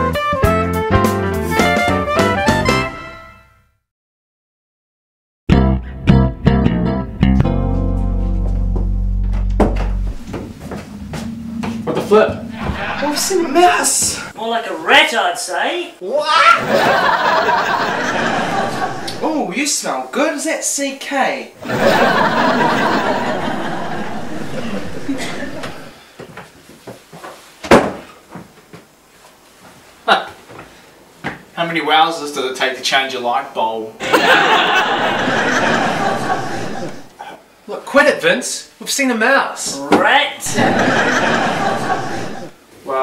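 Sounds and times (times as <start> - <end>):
sitcom theme music: 0.0 - 3.6, 5.5 - 14.3, 21.8 - 25.9
loud bang: 9.6 - 14.3.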